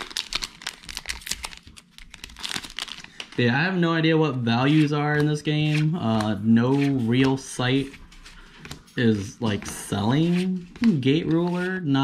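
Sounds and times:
wrapper crinkling and tearing: 0.0s - 3.4s.

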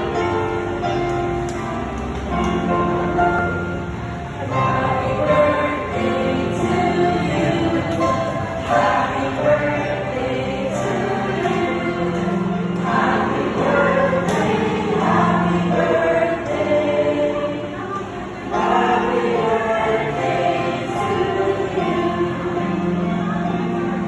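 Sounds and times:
group of voices singing: 4.4s - 24.0s.

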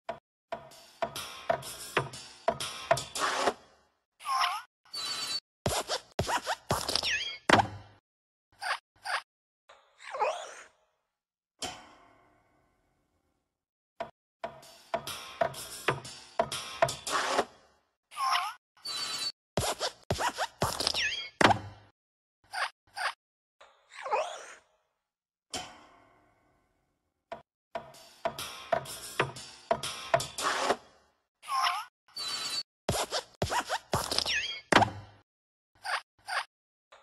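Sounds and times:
cartoon squeaks: 4.2s - 7.5s, 18.2s - 21.4s, 31.4s - 34.8s, 35.8s - 36.5s.

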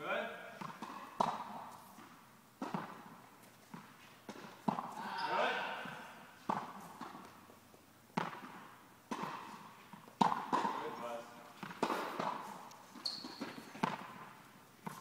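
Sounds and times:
tennis ball hit and bouncing: 0.6s - 15.0s.

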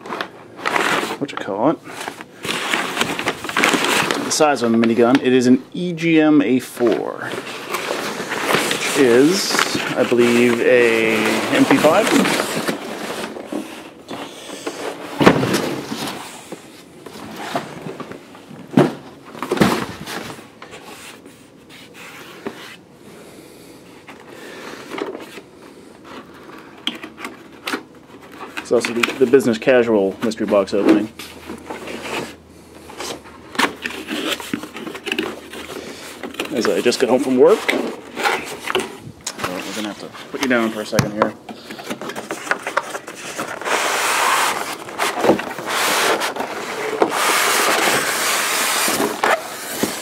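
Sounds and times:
packing paper rustling and crinkling: 0.0s - 22.7s, 24.8s - 50.0s.

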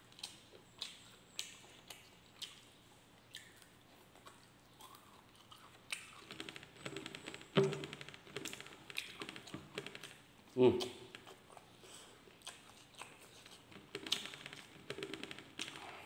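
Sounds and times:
wet mouth clicks: 0.1s - 2.7s, 3.3s - 7.3s.

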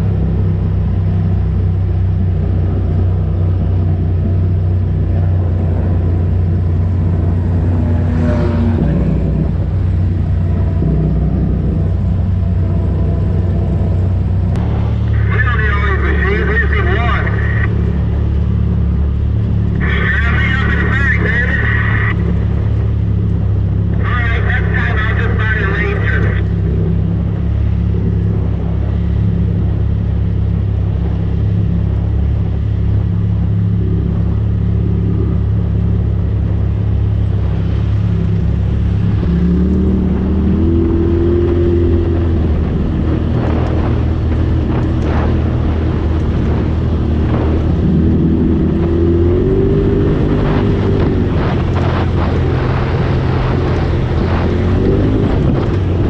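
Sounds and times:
off-road vehicle engine running: 0.0s - 56.0s.

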